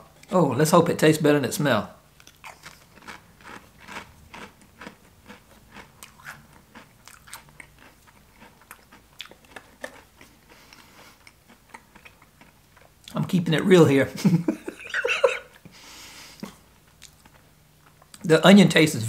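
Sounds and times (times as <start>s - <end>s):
chewing crisp crunches: 2.2s - 13.2s, 16.8s - 18.3s.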